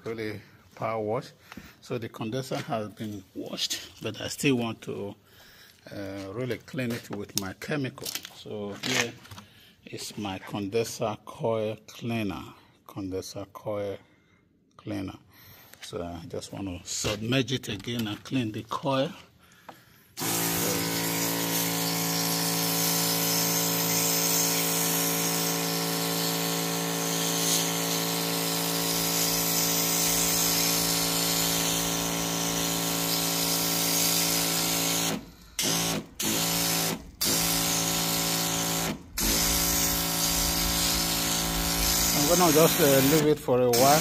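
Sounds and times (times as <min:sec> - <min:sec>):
pressure washer spraying: 0:20.2 - 0:44.0.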